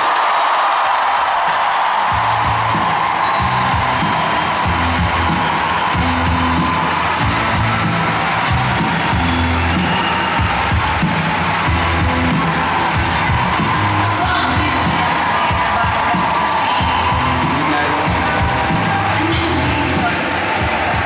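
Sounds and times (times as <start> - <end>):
audience cheering and clapping: 0.0 - 21.0
music with pulsing bass: 2.2 - 21.0.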